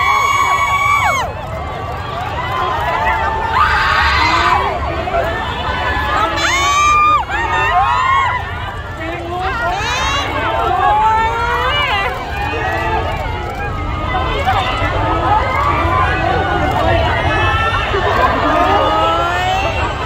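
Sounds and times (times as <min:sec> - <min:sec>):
crowd talking and calling out: 0:00.0 - 0:20.0.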